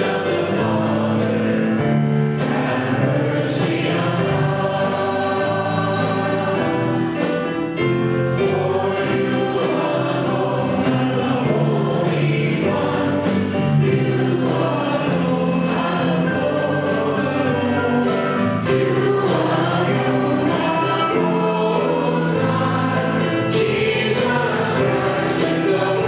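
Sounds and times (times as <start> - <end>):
church choir singing a hymn: 0.0 - 26.0.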